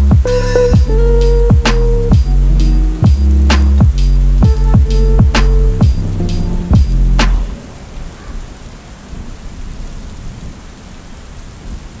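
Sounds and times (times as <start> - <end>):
low uneven rumble: 0.0 - 8.7
steady rain falling: 0.0 - 12.0.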